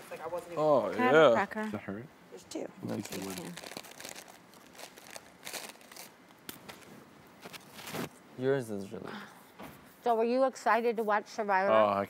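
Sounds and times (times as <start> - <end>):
cracker crunching: 2.9 - 8.1.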